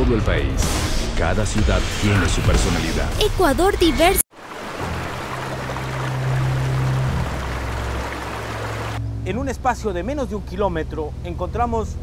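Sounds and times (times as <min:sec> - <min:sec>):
waterfall rushing: 0:04.4 - 0:09.0.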